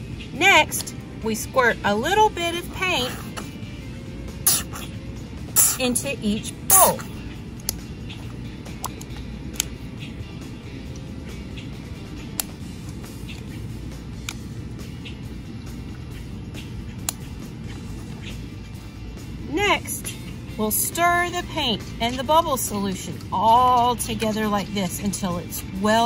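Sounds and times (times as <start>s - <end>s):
low background rumble: 0.0s - 26.0s.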